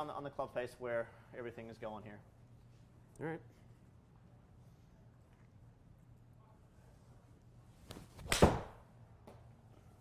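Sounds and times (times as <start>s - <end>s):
golf club swish: 7.8s - 8.8s
golf ball impact crack: 7.9s - 8.8s.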